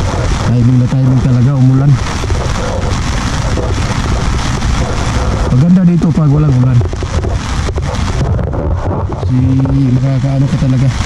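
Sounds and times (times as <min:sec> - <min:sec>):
rain on an umbrella: 0:00.0 - 0:11.0
wind noise on microphone: 0:00.0 - 0:11.0.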